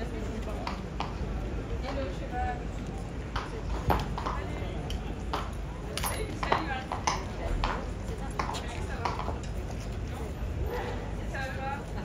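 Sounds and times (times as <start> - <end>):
tourists chattering: 0.0 - 12.0
horse hooves on stone floor: 0.3 - 2.2, 2.8 - 10.4.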